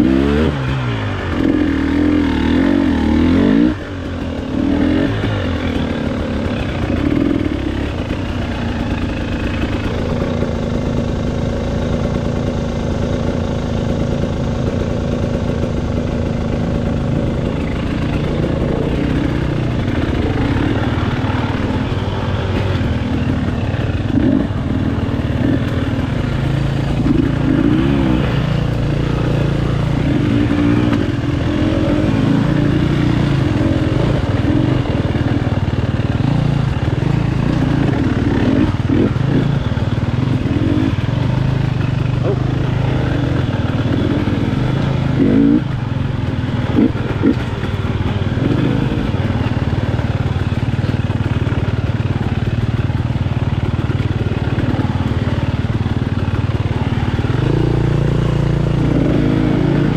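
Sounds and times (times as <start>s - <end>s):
two-stroke motorcycle engine: 0.0s - 59.9s.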